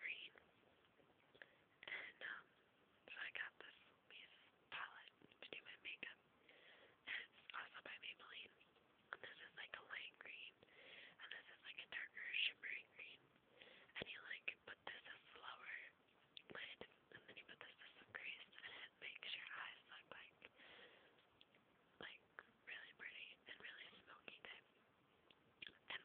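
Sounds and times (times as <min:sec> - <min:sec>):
person whispering: 0:00.0 - 0:00.4, 0:01.8 - 0:06.2, 0:07.0 - 0:10.6, 0:11.2 - 0:13.2, 0:13.9 - 0:20.6, 0:22.0 - 0:24.7, 0:25.6 - 0:26.0.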